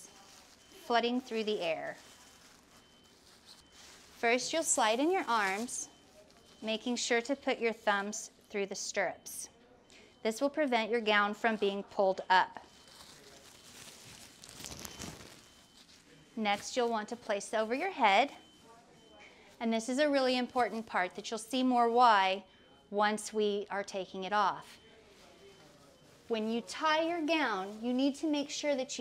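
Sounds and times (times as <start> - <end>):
plastic gown rustling: 0.0 - 8.2, 12.6 - 18.8, 24.5 - 29.0.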